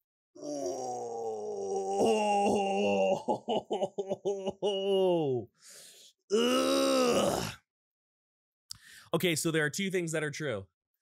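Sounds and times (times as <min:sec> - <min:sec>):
man groaning: 0:00.4 - 0:05.5, 0:06.3 - 0:07.6.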